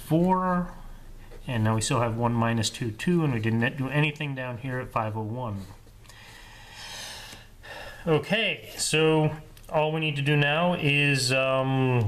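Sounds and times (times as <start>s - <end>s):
man breathing in: 6.0s - 8.1s.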